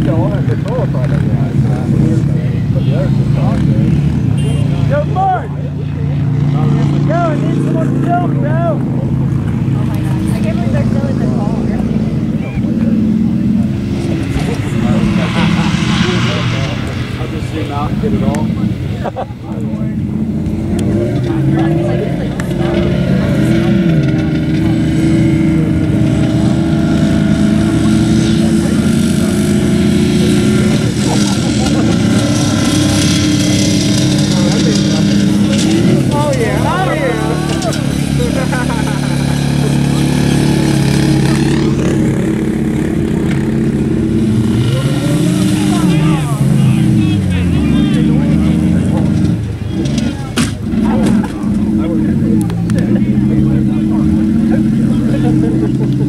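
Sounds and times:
car engines revving: 0:00.0 - 0:56.0
voices: 0:00.0 - 0:56.0.

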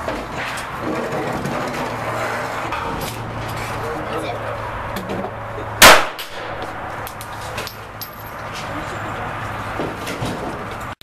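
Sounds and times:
pistol shot: 0:05.8 - 0:06.6.

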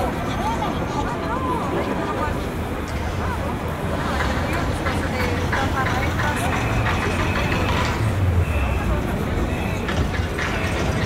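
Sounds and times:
crowd talking: 0:00.0 - 0:11.0
traffic engine hum: 0:00.0 - 0:11.0.

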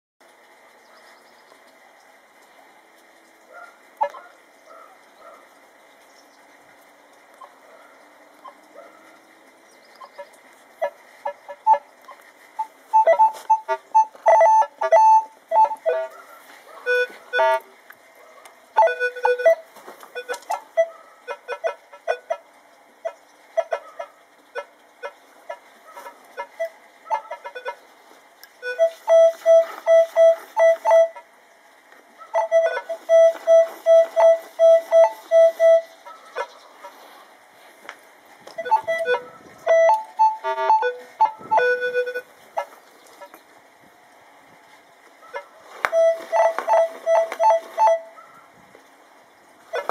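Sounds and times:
metal detector beeps: 0:12.9 - 0:16.1, 0:16.9 - 0:17.6, 0:18.8 - 0:19.6, 0:20.2 - 0:22.2, 0:28.6 - 0:31.2, 0:32.4 - 0:36.0, 0:38.6 - 0:42.3, 0:45.9 - 0:48.1.

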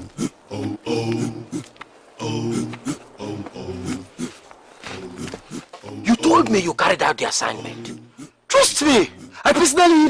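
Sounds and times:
deep male grunting calls: 0:00.0 - 0:06.5, 0:07.6 - 0:09.6.

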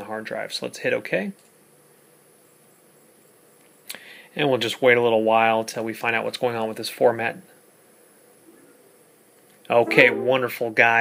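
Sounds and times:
faint steady hiss: 0:00.0 - 0:11.0
thin high-pitched whine: 0:09.7 - 0:11.0.

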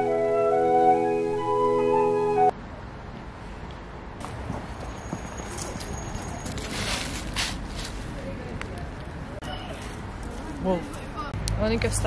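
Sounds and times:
outdoor ambience: 0:00.0 - 0:12.0
footsteps outdoors: 0:03.2 - 0:12.0.

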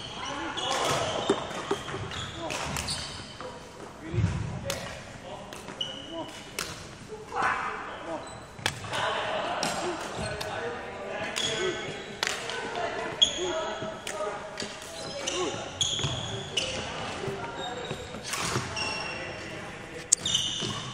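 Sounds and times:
shoes squeaking on wooden floor: 0:00.0 - 0:03.9, 0:14.9 - 0:20.9
indistinct echoing voices: 0:00.0 - 0:20.9.

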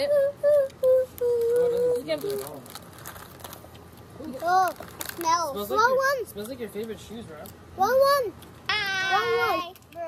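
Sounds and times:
child humming: 0:00.0 - 0:02.1.

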